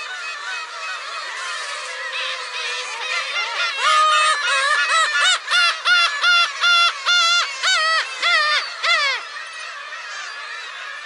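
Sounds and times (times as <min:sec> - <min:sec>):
distant gulls calling: 0:00.0 - 0:11.0
gull mewing calls: 0:00.0 - 0:11.0.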